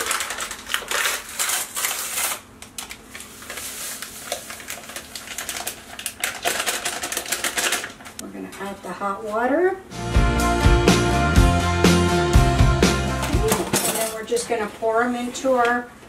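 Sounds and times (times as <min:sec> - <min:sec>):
kitchen handling clicks and rustles: 0:13.3 - 0:14.7.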